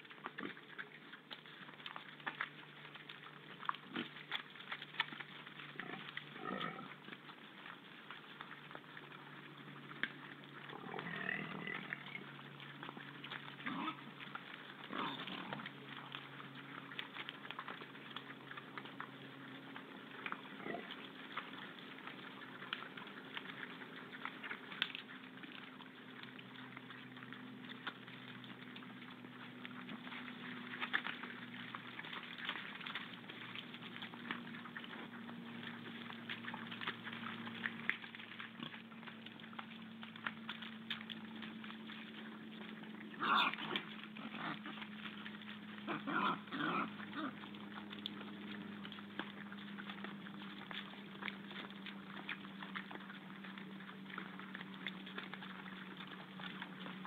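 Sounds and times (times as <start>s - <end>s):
boar eating clicks and crunches: 0.0s - 57.0s
boar grunts: 5.8s - 7.0s, 10.7s - 12.2s, 13.6s - 14.1s, 14.9s - 15.7s, 43.1s - 44.9s, 45.8s - 47.5s.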